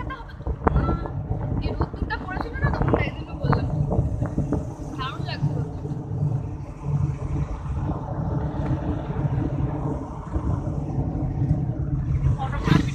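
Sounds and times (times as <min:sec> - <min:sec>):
car engine and road noise: 0:00.0 - 0:12.9.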